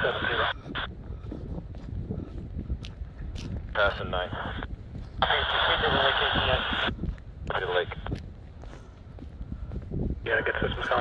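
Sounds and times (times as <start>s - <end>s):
tinny radio voice: 0.0s - 0.8s, 3.8s - 6.9s, 7.5s - 8.0s, 10.3s - 11.0s
footsteps on tarmac: 0.0s - 11.0s
wind rumbling on microphone: 0.0s - 11.0s.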